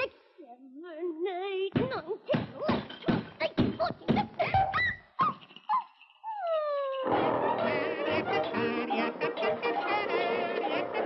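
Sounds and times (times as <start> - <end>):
orchestral cartoon music: 7.0 - 11.0.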